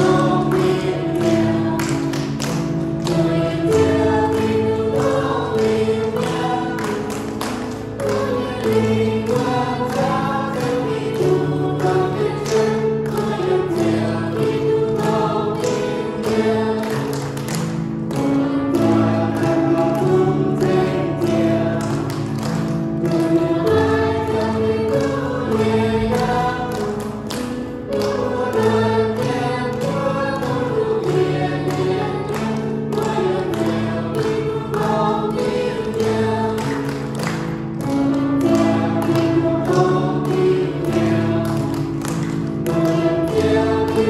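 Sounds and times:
choir singing a hymn: 0.0 - 44.0
piano accompaniment: 0.0 - 44.0.

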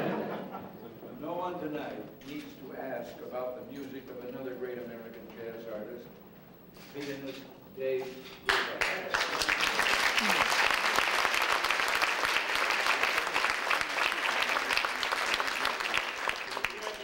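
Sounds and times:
audience applauding: 8.5 - 17.0.

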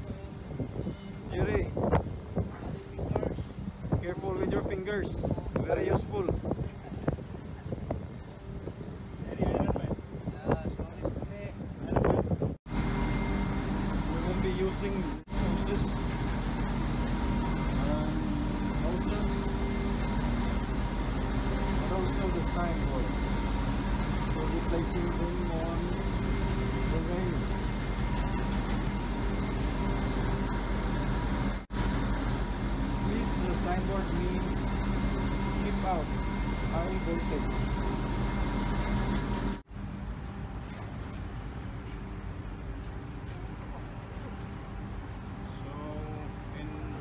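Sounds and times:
ship machinery drone: 0.0 - 47.0.

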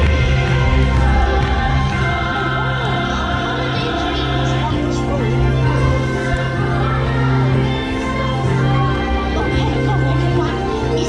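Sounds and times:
choir singing held notes: 0.0 - 11.0
music over loudspeakers: 0.0 - 11.0.

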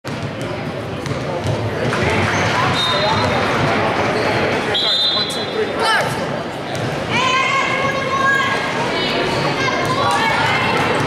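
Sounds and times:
basketball bouncing on court: 0.1 - 3.8
voices echoing in a hall: 0.1 - 11.0.

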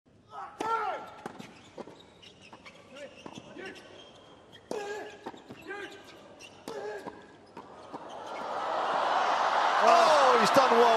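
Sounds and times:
players shouting: 7.8 - 10.9
crowd cheering and applause: 8.0 - 10.9.

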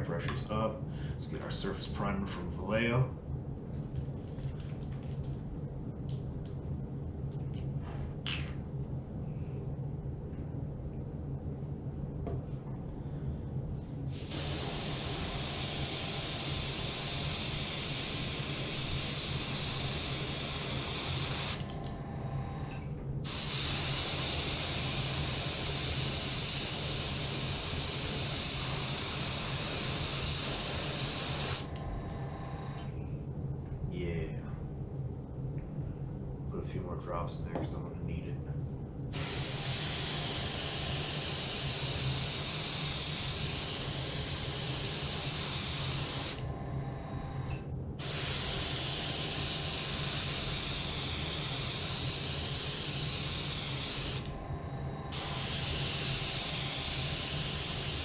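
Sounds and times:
steady low hum: 0.0 - 58.0
airbrush spraying hiss: 14.1 - 21.6, 23.3 - 31.7, 39.2 - 46.4, 48.0 - 54.3, 55.1 - 58.0.

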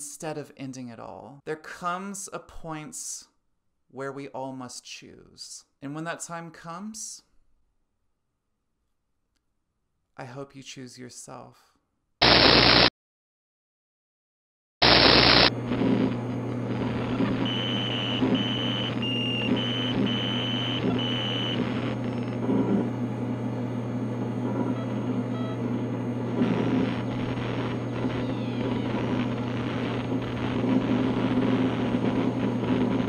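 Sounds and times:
burst of static: 12.2 - 12.9, 14.8 - 22.9, 24.6 - 33.0
electronic hum with crackle: 12.2 - 12.9, 14.8 - 33.0.

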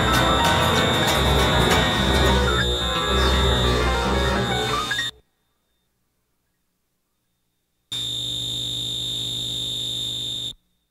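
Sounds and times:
high-pitched electronic tone: 0.0 - 5.2
low buzzing hum: 0.0 - 10.9.

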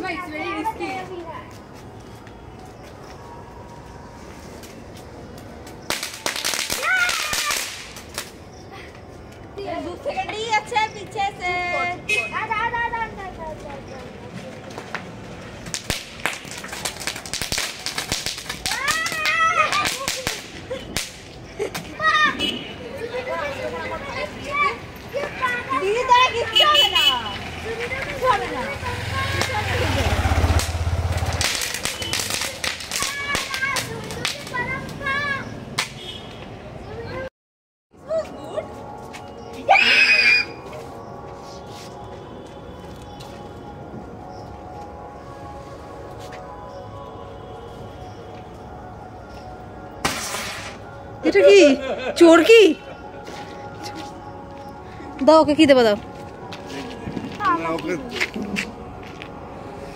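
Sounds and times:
high-pitched scream: 39.7 - 40.7.

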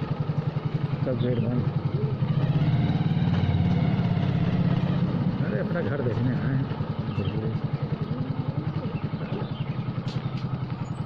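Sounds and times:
motorcycle engine running slowly: 0.0 - 11.0.

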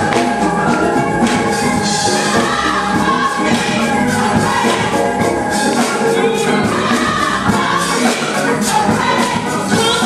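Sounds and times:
gospel choir singing: 0.0 - 10.0
instrumental accompaniment: 0.0 - 10.0.

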